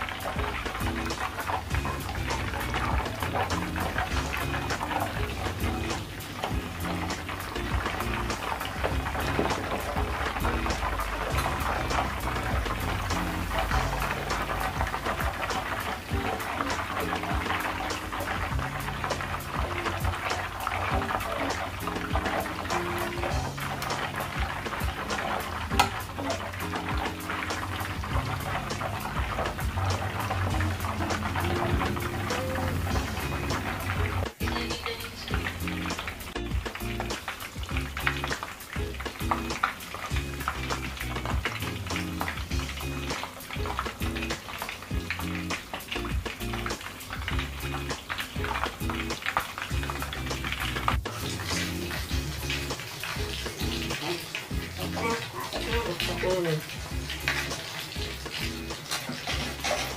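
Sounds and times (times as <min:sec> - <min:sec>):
background music with bass line: 0:00.0 - 0:59.9
oil bubbling and crackling: 0:00.0 - 0:59.9.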